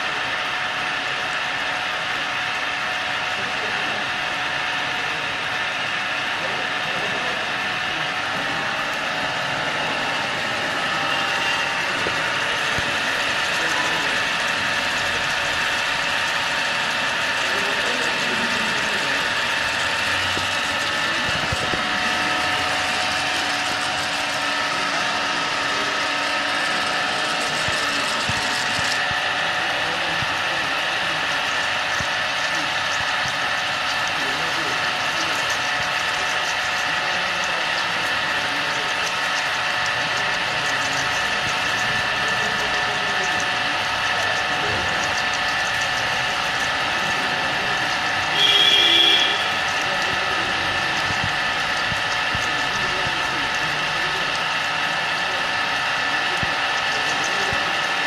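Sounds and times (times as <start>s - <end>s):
machine whining tones: 0.0s - 58.0s.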